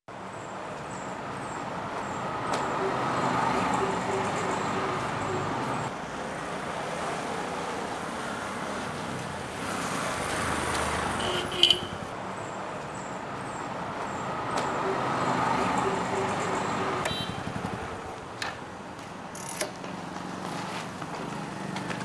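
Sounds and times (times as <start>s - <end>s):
street traffic noise: 0.1s - 22.0s
motorcycle engine rumble: 17.0s - 18.8s.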